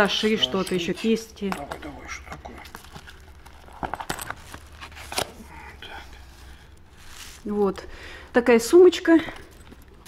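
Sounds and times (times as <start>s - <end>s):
bag rustling: 1.6s - 10.0s.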